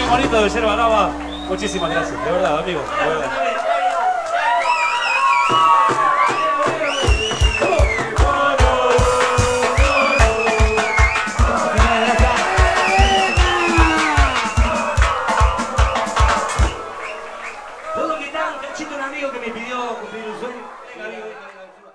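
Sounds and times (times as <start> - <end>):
steady bass drum beat: 7.1 - 16.8.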